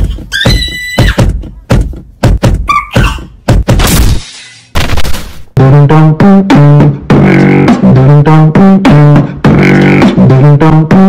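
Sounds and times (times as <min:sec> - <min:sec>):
loud percussive thumps: 0:00.0 - 0:04.2.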